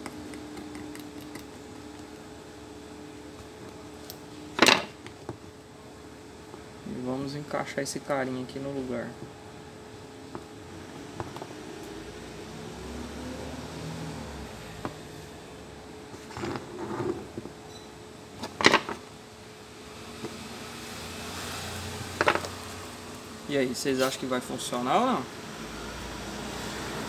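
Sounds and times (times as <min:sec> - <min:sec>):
faint steady hum: 0:00.0 - 0:27.0.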